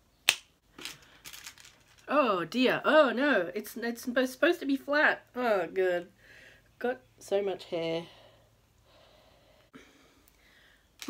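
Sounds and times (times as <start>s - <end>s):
sharp snap: 0.2s - 0.6s.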